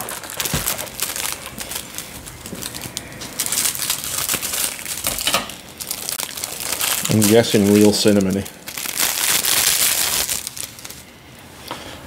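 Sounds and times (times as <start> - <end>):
foil wrapper crinkling: 0.0 - 11.1.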